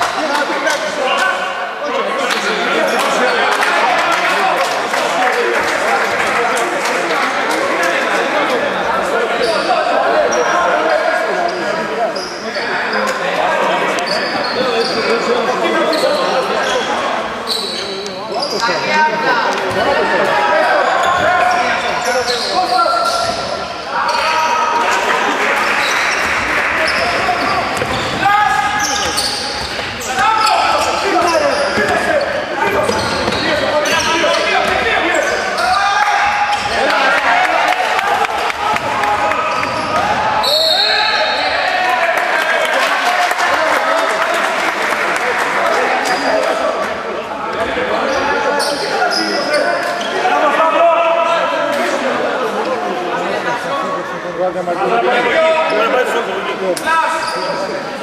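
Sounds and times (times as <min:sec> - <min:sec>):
voices calling out: 0:08.8 - 0:42.5.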